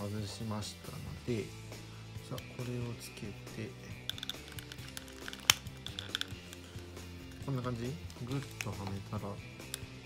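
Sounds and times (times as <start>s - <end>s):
background music: 0.0s - 10.0s
plastic clicks and taps: 4.0s - 6.7s.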